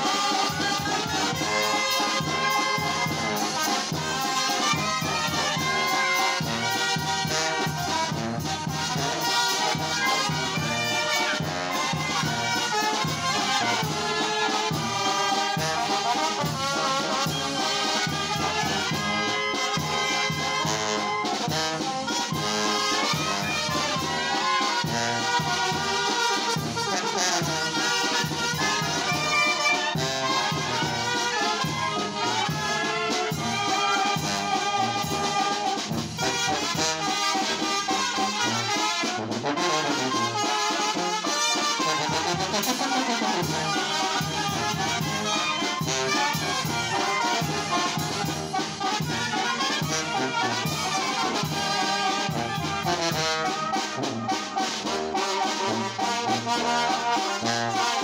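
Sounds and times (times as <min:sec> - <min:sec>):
brass band playing: 0:00.0 - 0:58.0
trombones: 0:00.0 - 0:58.0.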